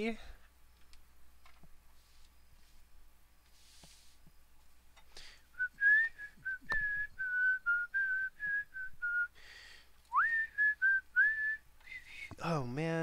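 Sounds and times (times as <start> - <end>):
breaths: 5.1 - 5.6, 9.3 - 10.0
man whistling a tune: 5.6 - 9.4, 10.1 - 12.3.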